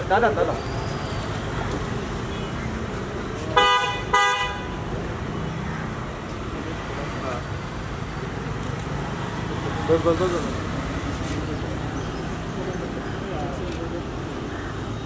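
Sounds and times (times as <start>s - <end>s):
street traffic rumble: 0.0s - 15.0s
vehicle horn blasts: 3.6s - 4.7s.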